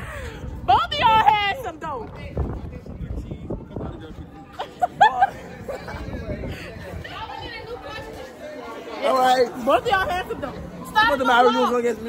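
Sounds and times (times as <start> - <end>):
chatter of young voices: 0.0 - 12.0.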